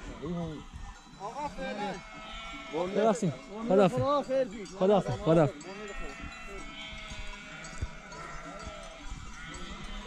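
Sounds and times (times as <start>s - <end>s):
sheep bleating: 0.0s - 10.0s.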